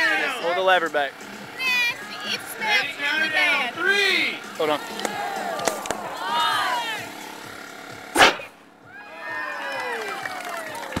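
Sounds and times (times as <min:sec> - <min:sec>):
people calling out: 0:00.0 - 0:00.6, 0:01.5 - 0:07.4
loud thump: 0:08.2 - 0:08.5.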